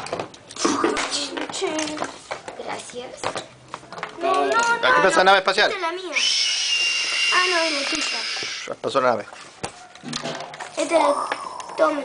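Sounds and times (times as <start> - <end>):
child making play sounds: 0.6 - 3.2, 4.2 - 8.7, 10.7 - 12.0.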